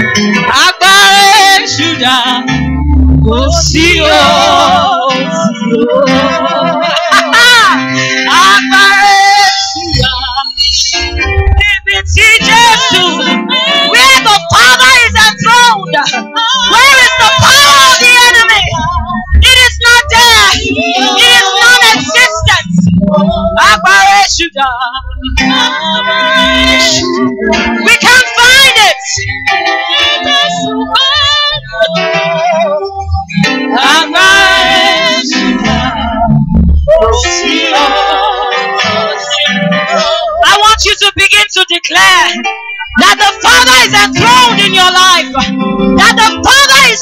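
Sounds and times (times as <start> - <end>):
instrumental worship music: 0.0 - 47.0
women singing into microphones: 0.5 - 47.0.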